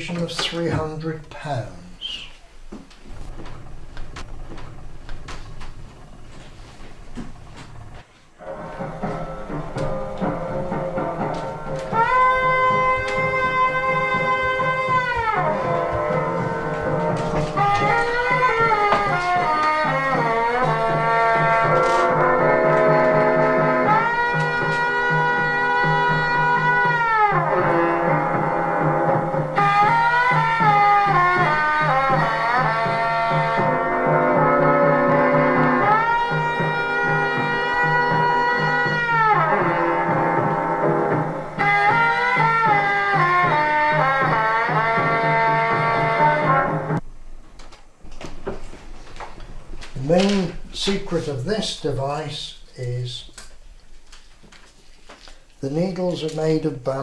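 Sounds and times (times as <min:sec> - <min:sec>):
gramophone playing brass music: 0:03.1 - 0:47.0.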